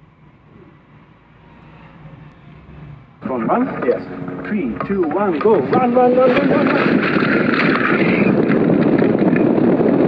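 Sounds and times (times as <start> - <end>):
wind buffeting microphone: 2.2 - 10.0.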